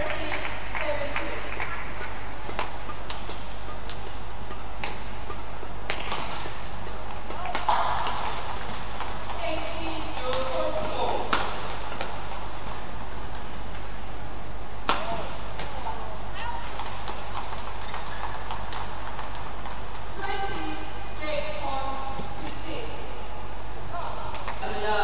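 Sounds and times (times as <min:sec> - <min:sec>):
racket hitting shuttlecock: 0:00.0 - 0:20.8
voices in hall: 0:18.0 - 0:25.0.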